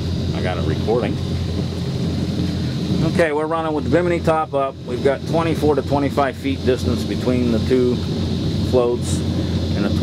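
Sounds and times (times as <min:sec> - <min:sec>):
boat engines idling: 0:00.0 - 0:10.0
wind buffeting microphone: 0:00.0 - 0:10.0.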